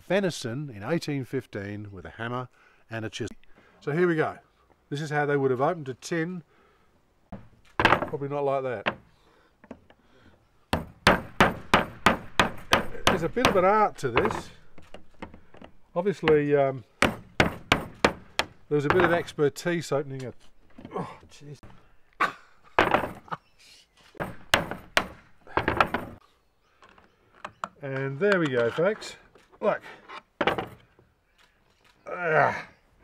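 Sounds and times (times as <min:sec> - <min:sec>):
hammer striking chisel on metal: 0:10.8 - 0:14.5
faint clicks: 0:31.3 - 0:32.0.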